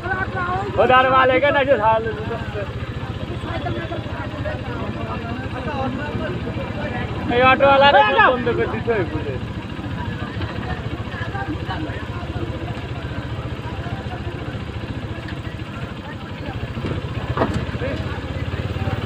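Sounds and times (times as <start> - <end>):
motorcycle engine idling: 0.0 - 19.0
people talking: 0.0 - 19.0.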